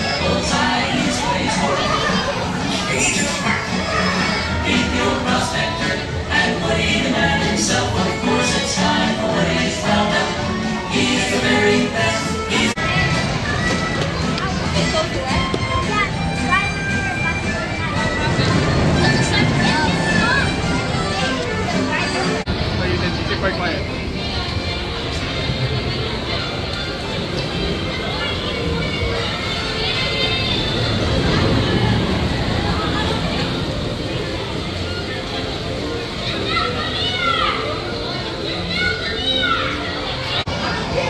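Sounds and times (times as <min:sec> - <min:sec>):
carousel music: 0:00.0 - 0:41.0
children squealing and chattering: 0:00.0 - 0:41.0
crowd babble: 0:00.0 - 0:41.0
people's voices: 0:00.0 - 0:41.0.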